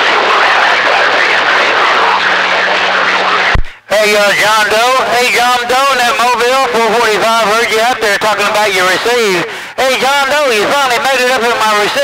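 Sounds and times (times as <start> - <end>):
radio static hiss: 0.0 - 12.0
weak garbled radio voices: 0.0 - 12.0.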